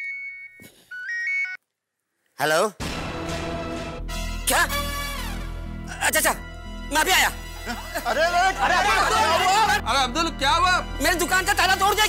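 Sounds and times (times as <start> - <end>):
mobile phone ringtone: 0.0 - 1.6.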